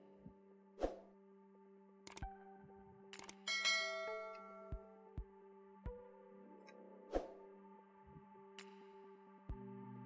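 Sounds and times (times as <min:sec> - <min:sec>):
soft background music: 0:00.0 - 0:10.0
mouse clicks: 0:02.0 - 0:02.3
bright bell chime: 0:03.5 - 0:05.0.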